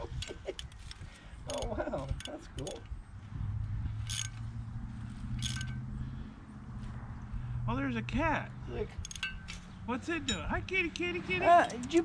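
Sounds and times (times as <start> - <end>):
ratchet wrench clicking: 0.1 - 2.9, 4.0 - 4.5, 5.3 - 5.8, 9.0 - 9.7.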